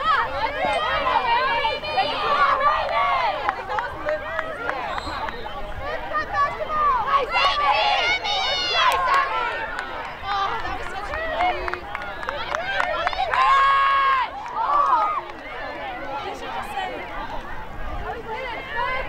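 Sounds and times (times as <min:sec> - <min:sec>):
high voices shouting: 0:00.0 - 0:19.0.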